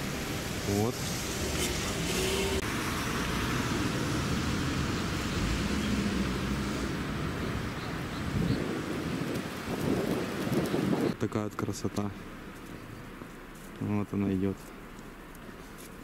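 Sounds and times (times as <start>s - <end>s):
road traffic passing: 0.0s - 16.0s
wind on microphone: 4.8s - 11.2s.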